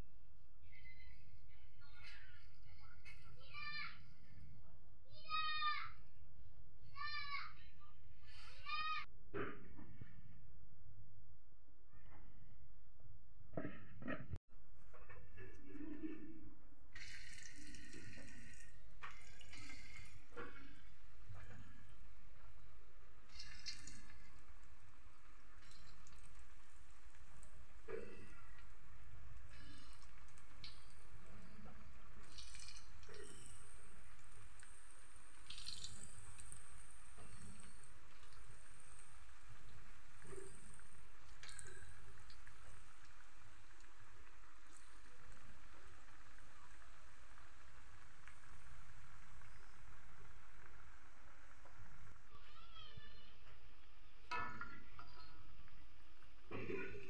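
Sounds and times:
food sizzling in hot oil: 17.0s - 52.3s
oil popping and spattering: 17.0s - 52.3s.

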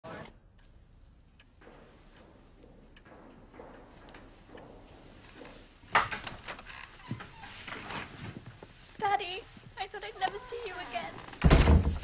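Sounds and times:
knocks and movement: 0.0s - 12.0s
door opening with click: 11.2s - 12.0s.

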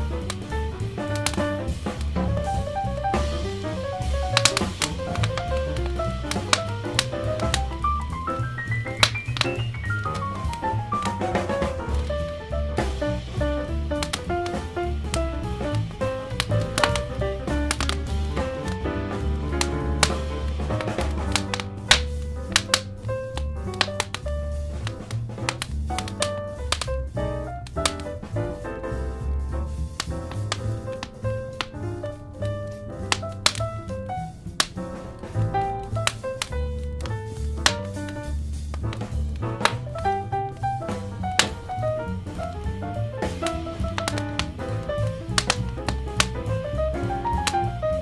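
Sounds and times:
smooth jazz: 0.0s - 48.0s
wood fire crackling and popping: 0.0s - 48.0s.

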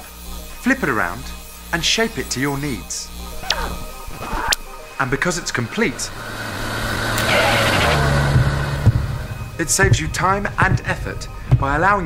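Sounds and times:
rushing noise: 3.0s - 10.8s
vehicle engine hum: 3.1s - 11.6s.

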